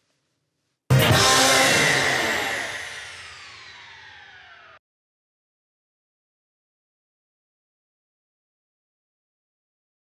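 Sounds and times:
whoosh with downward sliding tones: 0:01.0 - 0:04.8.

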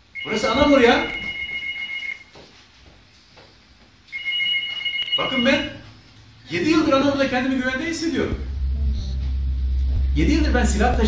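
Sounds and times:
telephone ringing: 0:00.2 - 0:02.3, 0:04.1 - 0:05.8.

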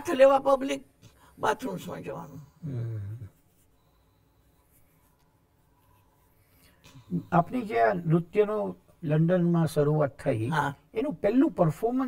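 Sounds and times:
person speaking: 0:06.9 - 0:12.0.

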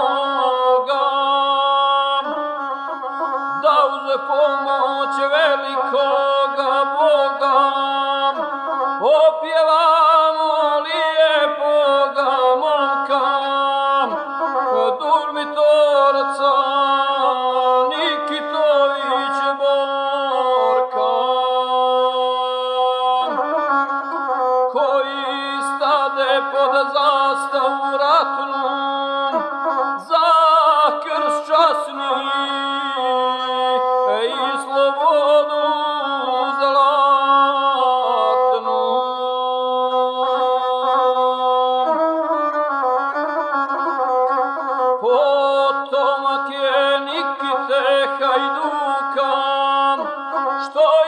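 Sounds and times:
man singing epic song: 0:00.0 - 0:02.4, 0:03.6 - 0:23.4, 0:24.8 - 0:29.4, 0:30.0 - 0:42.0, 0:45.0 - 0:51.0
bowed single-string fiddle: 0:00.0 - 0:51.0.

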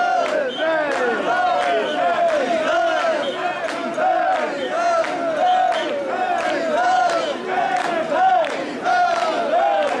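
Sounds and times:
group chanting shouted call: 0:00.0 - 0:10.0.

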